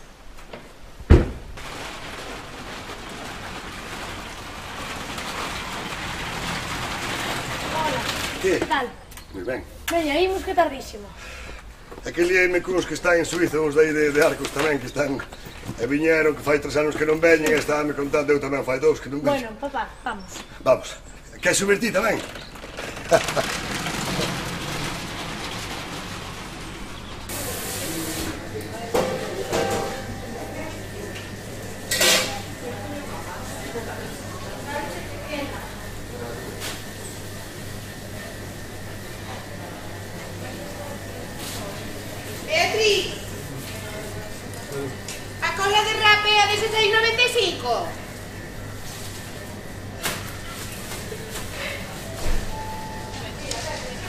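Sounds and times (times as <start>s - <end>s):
trolley wheels rolling over paving: 1.6s - 9.0s, 21.4s - 27.3s.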